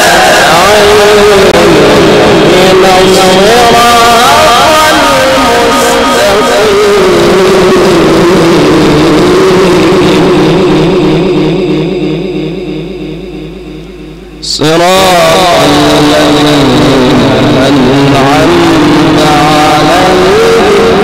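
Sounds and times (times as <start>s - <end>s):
man chanting into a microphone: 0.0s - 21.0s.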